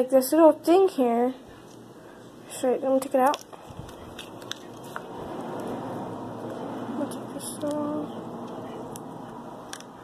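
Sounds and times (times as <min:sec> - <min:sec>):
slime rustling in hands: 0:03.1 - 0:06.6.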